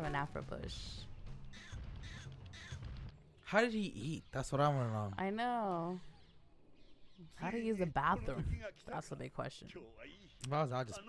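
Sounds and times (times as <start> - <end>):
low background music: 0.0 - 9.0
cartoon creature crow-like calls: 1.6 - 2.9.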